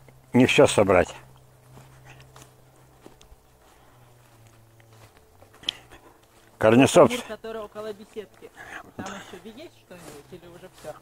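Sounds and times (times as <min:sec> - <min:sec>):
low steady hum: 0:00.0 - 0:11.0
rustling in grass: 0:00.0 - 0:11.0.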